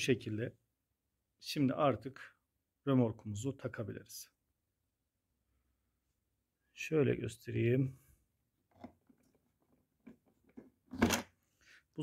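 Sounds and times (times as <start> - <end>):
plastic knocks and scrapes: 8.7 - 11.4.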